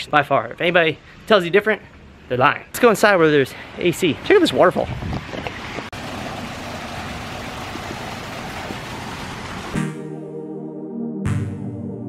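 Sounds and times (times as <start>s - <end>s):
fountain water splashing into basin: 5.9s - 9.8s.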